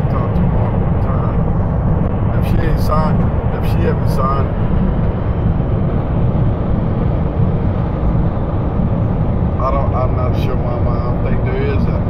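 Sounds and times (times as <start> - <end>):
engine noise: 0.0 - 12.0
wind noise: 0.0 - 12.0.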